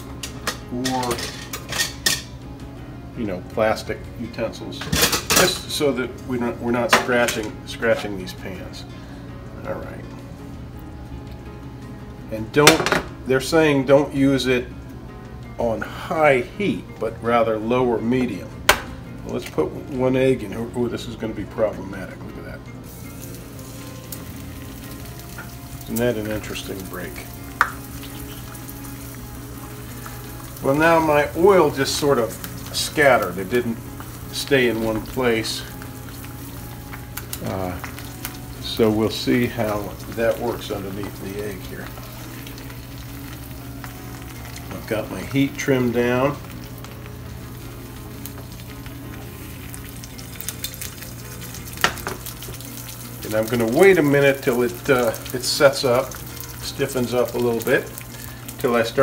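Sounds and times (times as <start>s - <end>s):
kitchen utensils clattering: 0.2s - 2.4s, 4.8s - 5.7s
egg sizzling in frying pan: 22.8s - 59.0s.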